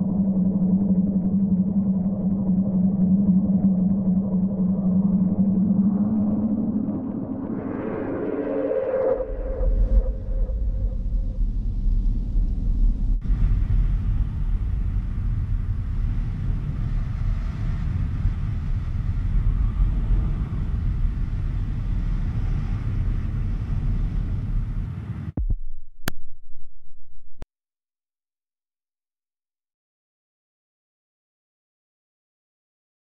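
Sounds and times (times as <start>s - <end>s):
deep low rumble: 0.0s - 27.4s.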